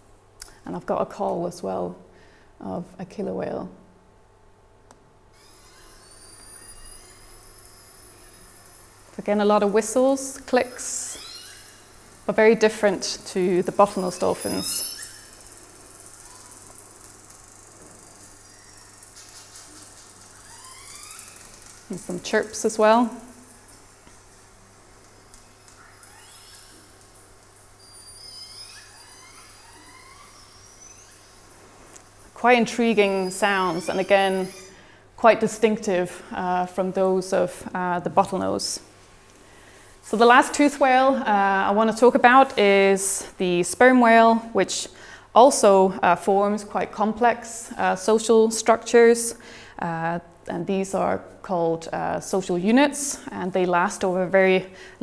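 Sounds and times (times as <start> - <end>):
killer whale whistles over loudspeakers: 5.4 - 8.6
orca whistles and chirps: 5.4 - 8.7, 11.0 - 12.0, 14.0 - 15.6, 25.5 - 27.0, 27.8 - 31.5.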